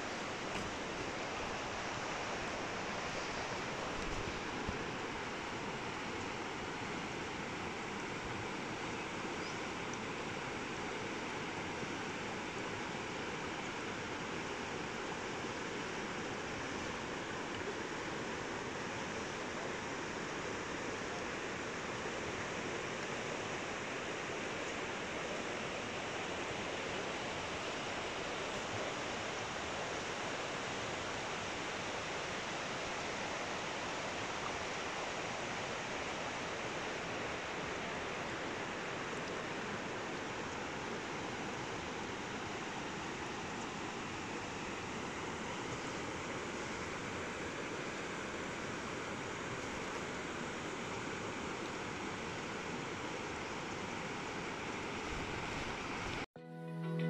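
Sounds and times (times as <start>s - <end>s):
river rushing over rocks: 0.0s - 56.3s.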